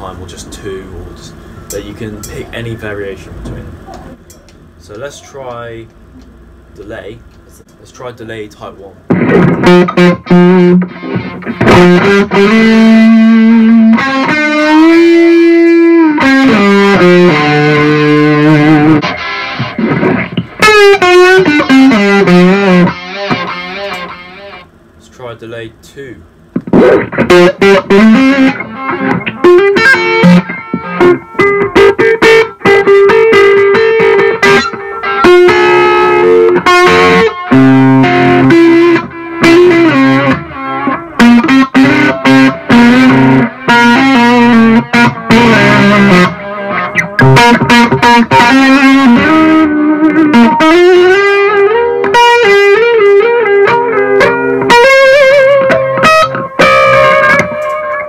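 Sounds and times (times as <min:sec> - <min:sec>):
electric guitar with delay: 0:09.1 - 0:25.0, 0:26.3 - 0:58.0.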